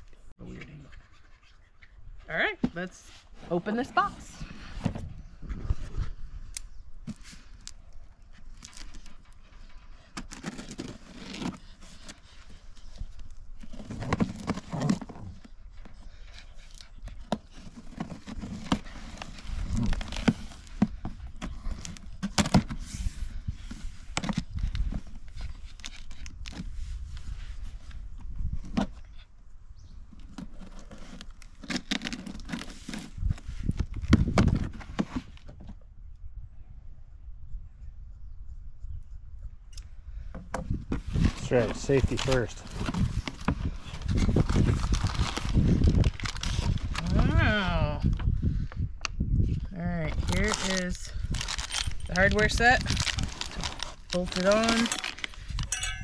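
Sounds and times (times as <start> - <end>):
cardboard scraping and rustling: 8.4 - 29.1, 30.2 - 35.8, 40.7 - 47.4, 52.4 - 55.6.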